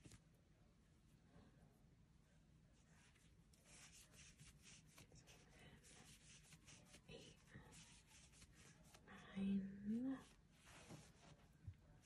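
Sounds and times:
crochet hook scratching yarn: 0:03.6 - 0:09.1.

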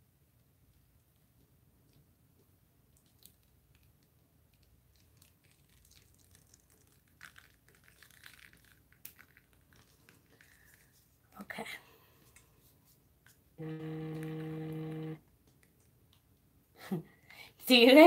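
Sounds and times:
light crinkles of plastic sheeting: 0:02.9 - 0:13.4.

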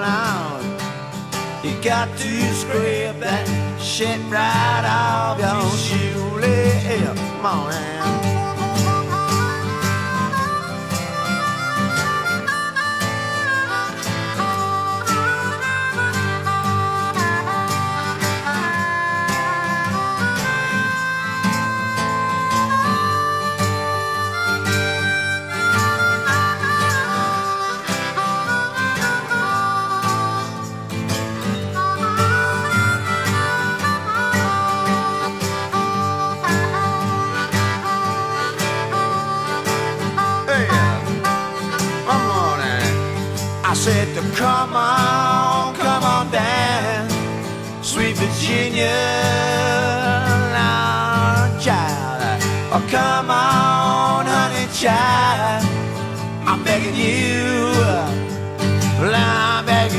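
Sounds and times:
harmonica solo: 0:00.0 - 0:59.9
strummed acoustic guitar: 0:00.0 - 0:59.9.

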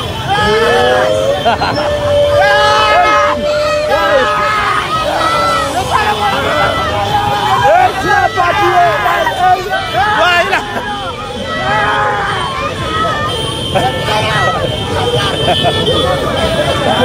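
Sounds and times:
car running: 0:00.0 - 0:17.0
crowd shouting: 0:00.0 - 0:17.0.

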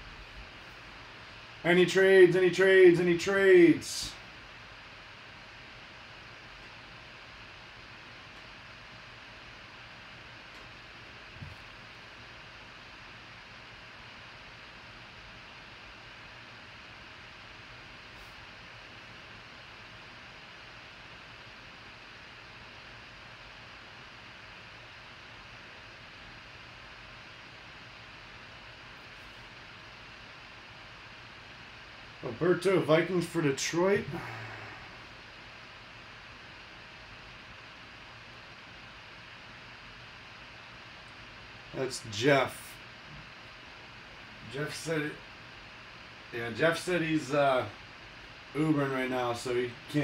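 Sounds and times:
faint steady hum: 0:00.0 - 0:50.0
low hiss: 0:00.0 - 0:50.0.

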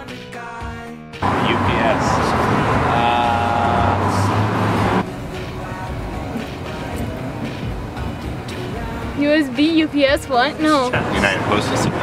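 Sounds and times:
car driving past: 0:01.2 - 0:09.1
city street traffic: 0:01.2 - 0:12.0
voices: 0:01.2 - 0:12.0.

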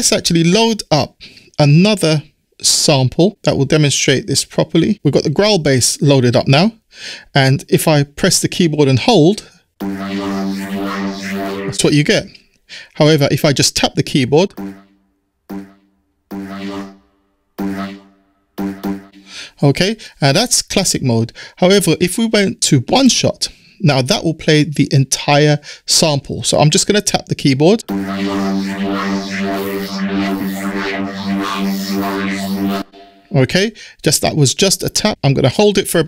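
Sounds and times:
synthetic growl bass notes: 0:09.8 - 0:12.0, 0:14.5 - 0:14.9, 0:15.5 - 0:17.0, 0:17.6 - 0:19.4, 0:27.8 - 0:33.4.

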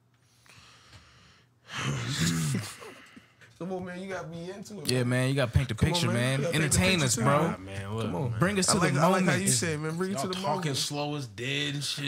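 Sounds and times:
people talking: 0:01.8 - 0:02.7, 0:03.6 - 0:12.0.

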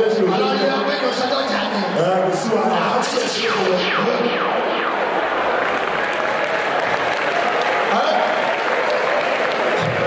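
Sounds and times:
crowd voices: 0:00.0 - 0:10.0
audience applauding: 0:05.5 - 0:10.0.

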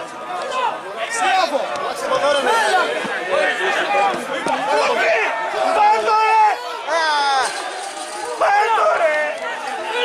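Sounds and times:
people shouting and calling: 0:00.0 - 0:10.0.

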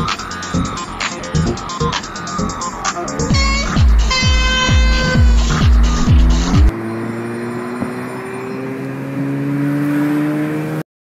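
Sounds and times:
electronic dance music: 0:00.0 - 0:06.7
car engine accelerating: 0:01.5 - 0:10.8.

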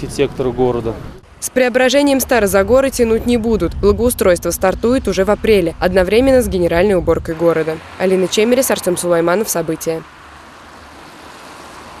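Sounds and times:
distant traffic rumble and hiss: 0:00.0 - 0:12.0.

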